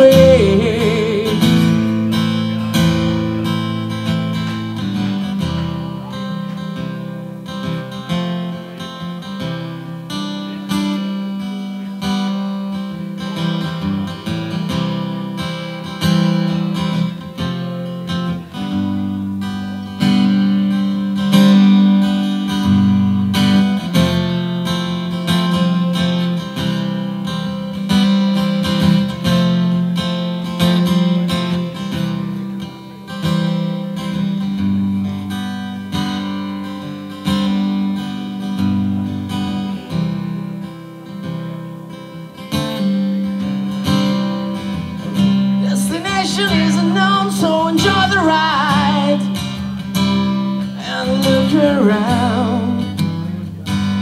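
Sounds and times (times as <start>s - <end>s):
acoustic guitar strumming chords: 0.0s - 54.0s.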